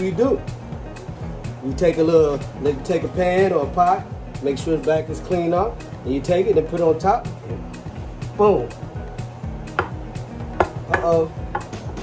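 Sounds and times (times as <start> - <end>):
background music: 0.0 - 12.0
frying pan knocking on board: 9.6 - 12.0.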